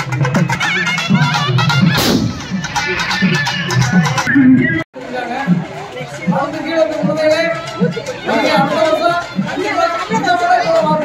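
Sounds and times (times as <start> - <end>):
loud music: 0.0 - 4.9
firecracker bang: 1.9 - 2.8
firecrackers crackling: 2.0 - 2.8.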